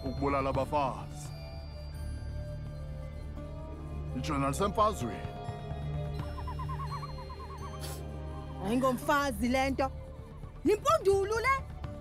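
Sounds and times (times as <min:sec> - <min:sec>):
low background music drone: 0:00.0 - 0:12.0.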